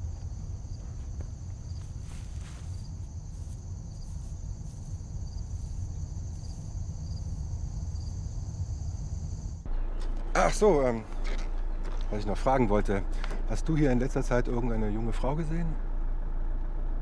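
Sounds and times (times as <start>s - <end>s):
insects trilling: 0.0s - 9.6s
low rumble: 0.0s - 14.3s.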